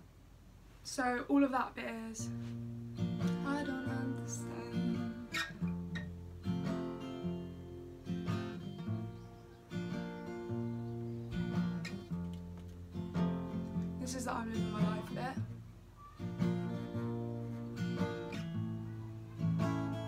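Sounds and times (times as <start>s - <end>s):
acoustic guitar picking and strumming: 2.1s - 20.0s.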